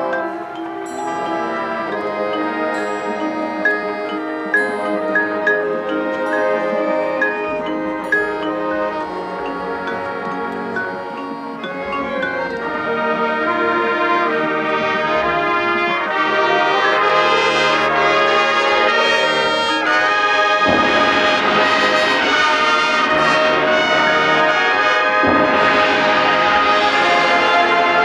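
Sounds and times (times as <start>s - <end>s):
accented full band hits: 0.0s - 28.0s
marching band brass chords: 0.0s - 28.0s.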